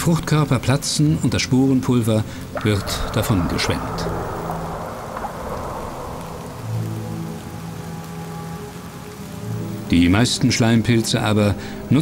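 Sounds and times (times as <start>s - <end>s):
rain and water drops: 0.0s - 12.0s
soft low music notes: 0.0s - 12.0s.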